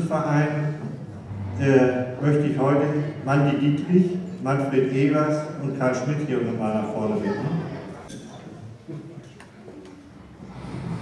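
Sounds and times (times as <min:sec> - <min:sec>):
faint voices murmuring: 0:00.0 - 0:11.0.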